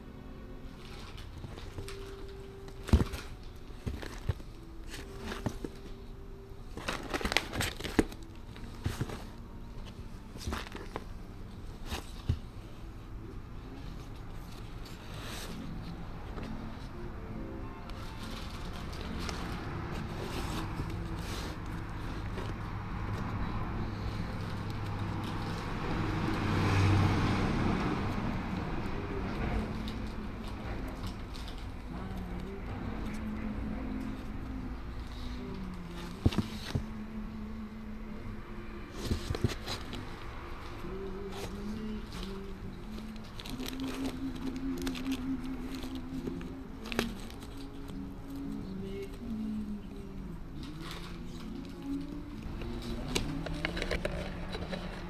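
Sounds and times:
records flipping in a crate: 0:00.8 - 0:06.1, 0:06.7 - 0:12.6, 0:38.9 - 0:49.3.

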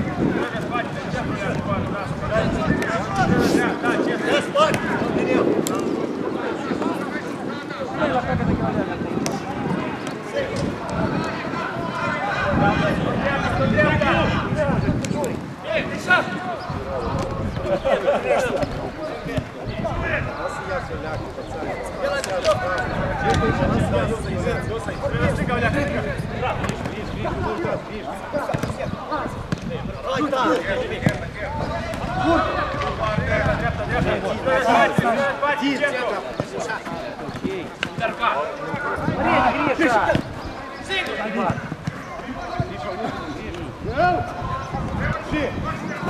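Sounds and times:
players shouting: 0:00.0 - 0:46.0
ball being kicked: 0:28.5 - 0:28.8
football being kicked: 0:28.5 - 0:28.8, 0:31.0 - 0:31.3.

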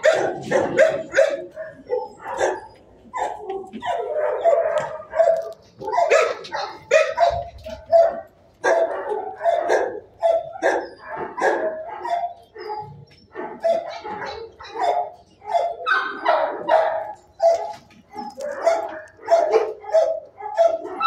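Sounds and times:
dogs barking: 0:00.0 - 0:21.0.

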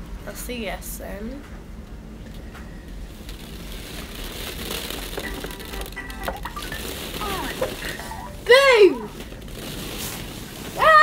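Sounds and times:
play tent and balls rustling: 0:02.8 - 0:11.0
child's loud vocal call: 0:10.8 - 0:11.0.

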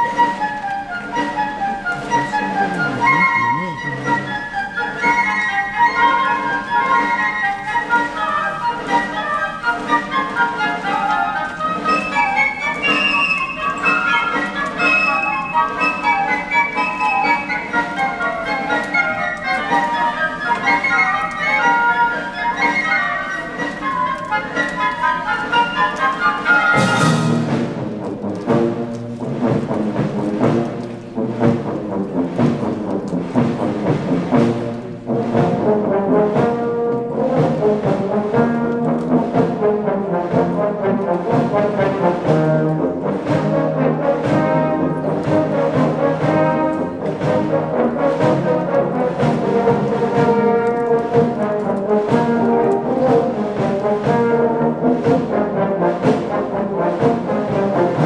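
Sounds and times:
euphoniums and saxophones: 0:00.0 - 0:58.0
flutes: 0:00.0 - 0:58.0
wind band playing: 0:00.0 - 0:58.0.

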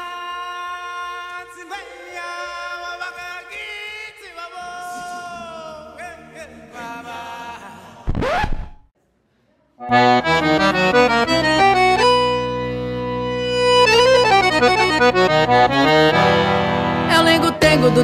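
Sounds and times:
accordion-led folk music: 0:09.8 - 0:18.0.

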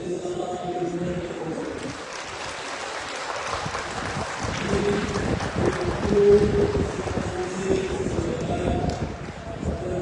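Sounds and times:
wind buffeting microphone: 0:03.4 - 0:10.0.

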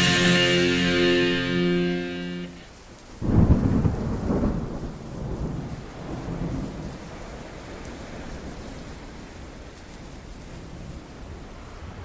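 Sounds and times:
rain hissing: 0:00.0 - 0:12.0
thunder rumbling: 0:03.2 - 0:07.2.

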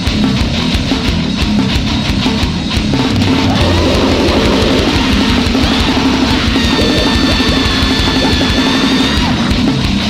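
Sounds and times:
bass guitar: 0:00.0 - 0:10.0
distorted electric guitars: 0:00.0 - 0:10.0
fast drumming: 0:02.7 - 0:09.4
steady high-pitched tone: 0:03.1 - 0:09.2.

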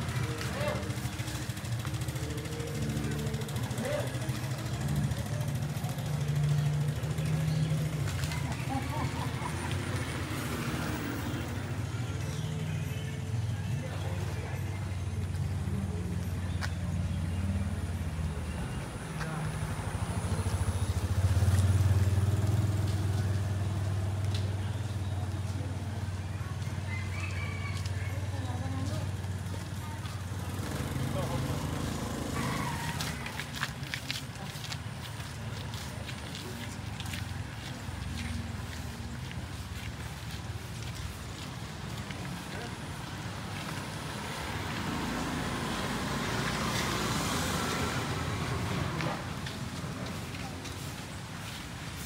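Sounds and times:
vehicle passing close: 0:00.0 - 0:12.7, 0:15.5 - 0:52.0
scooter and car engines rumbling: 0:00.0 - 0:52.0.

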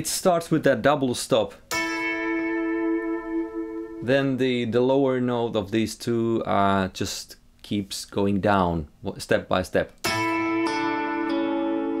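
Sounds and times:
electric guitar double stop: 0:10.0 - 0:12.0.

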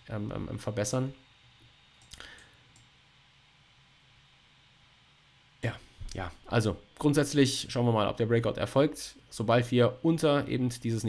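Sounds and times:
computer mouse clicks: 0:02.0 - 0:02.9.

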